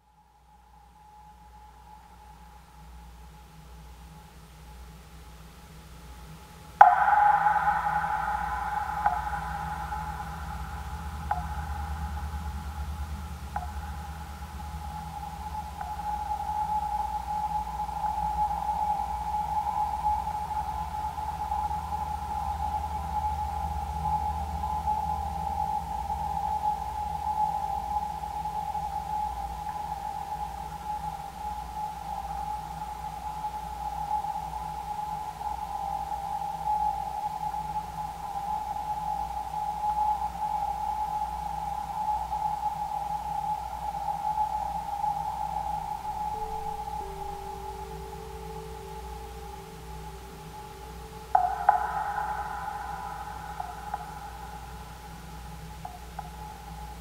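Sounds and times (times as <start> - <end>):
ambient electronic drone music: 5.8 - 57.0.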